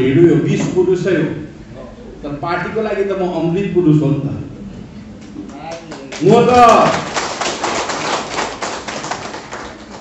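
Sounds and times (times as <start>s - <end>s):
crowd clapping: 5.7s - 10.0s.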